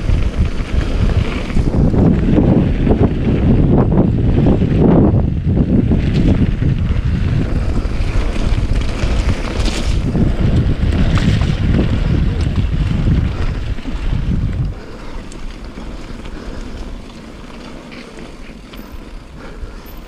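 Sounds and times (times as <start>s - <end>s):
bike tyres rolling on dirt: 0.0s - 20.0s
wind buffeting microphone: 0.0s - 20.0s.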